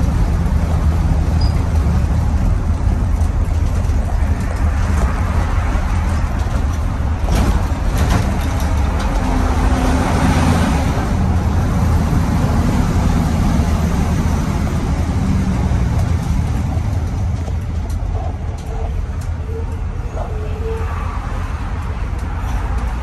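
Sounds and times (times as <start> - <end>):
diesel bus engine running: 0.0 - 23.0
road and tyre noise: 0.0 - 23.0.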